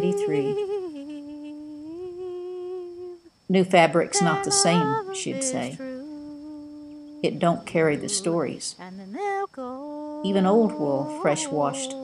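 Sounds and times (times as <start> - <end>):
person humming a held note: 0.0 - 3.3, 4.1 - 12.0.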